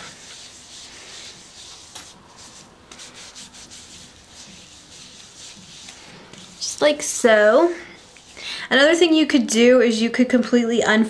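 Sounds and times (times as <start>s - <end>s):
wipe rubbing on face: 0.0s - 6.8s.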